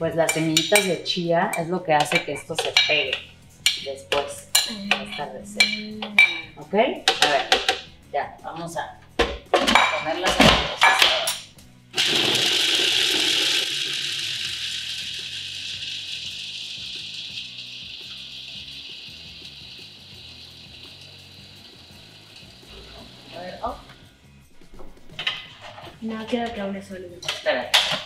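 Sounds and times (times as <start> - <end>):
rock music: 2.4 - 27.3.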